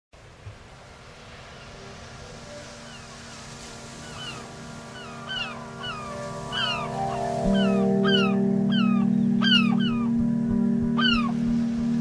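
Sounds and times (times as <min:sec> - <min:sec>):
soft sustained music: 0:00.4 - 0:12.0
birds chirping: 0:02.8 - 0:11.5.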